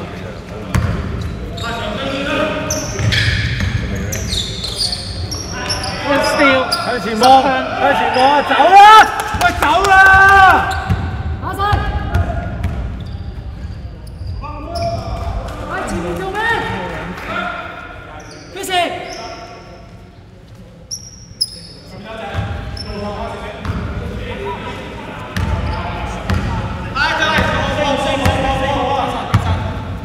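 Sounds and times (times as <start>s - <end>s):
players shouting: 5.4s - 12.6s.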